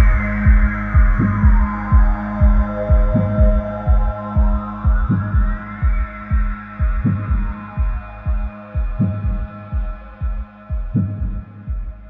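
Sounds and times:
gliding synth tone: 0.0 - 10.7
electronic dance track: 0.0 - 12.0
four-on-the-floor kick drum: 0.0 - 12.0.

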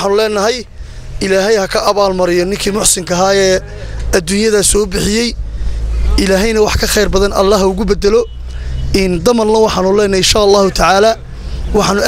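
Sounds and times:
man talking into microphone: 0.0 - 12.0.

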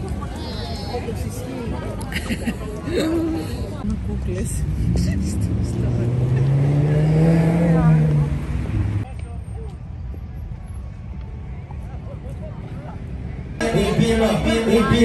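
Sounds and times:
outdoor noise: 0.0 - 15.0
vehicle engine accelerating past: 4.4 - 9.0.

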